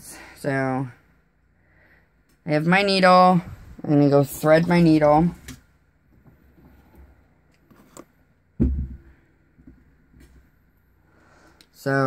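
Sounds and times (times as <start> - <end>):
dull thump: 8.6 - 9.8.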